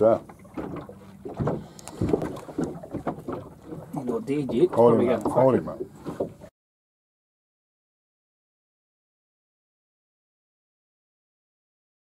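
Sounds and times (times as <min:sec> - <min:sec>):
fish thumping on carpeted deck: 0:00.6 - 0:03.5.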